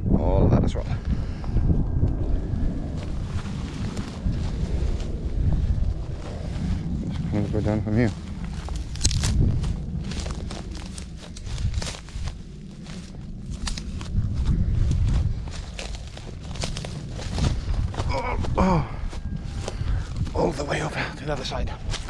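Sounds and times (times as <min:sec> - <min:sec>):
wind rumble on microphone: 0:00.0 - 0:22.0
footsteps crunching through dry grass: 0:02.8 - 0:22.0.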